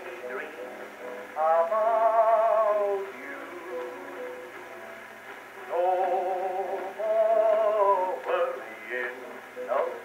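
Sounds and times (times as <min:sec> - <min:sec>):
old phonograph record music: 0:00.0 - 0:10.0.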